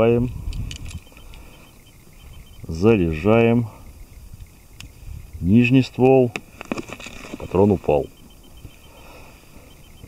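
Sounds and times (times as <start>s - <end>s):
low outdoor background noise: 0.0s - 10.0s.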